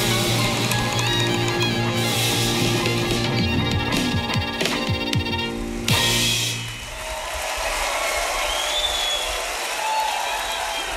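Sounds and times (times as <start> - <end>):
audience applauding: 0.0 - 5.2, 6.0 - 10.9
western swing band with drums: 0.0 - 6.8.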